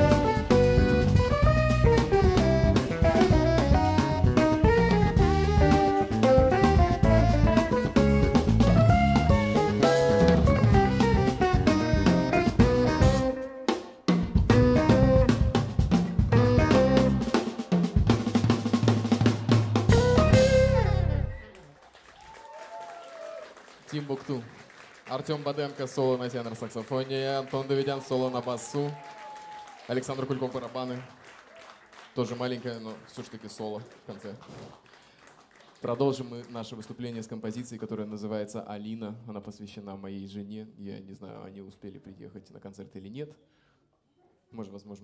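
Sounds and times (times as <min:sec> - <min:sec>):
jazz band playing: 0:00.0 - 0:21.6.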